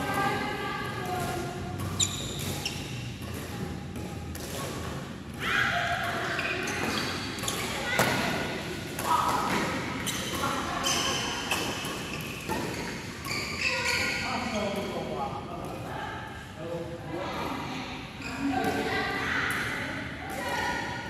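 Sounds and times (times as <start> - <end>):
racket striking shuttlecock: 1.1 - 5.3.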